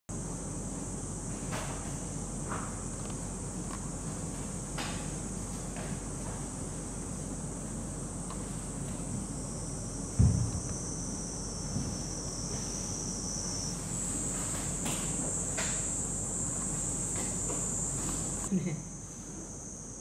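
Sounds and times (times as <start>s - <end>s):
high-pitched insect chorus: 0.2s - 20.0s
low thump: 10.1s - 10.8s.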